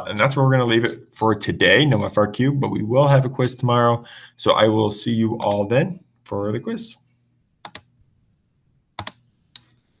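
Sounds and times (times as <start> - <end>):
keyboard keys clicking: 9.0 - 9.2.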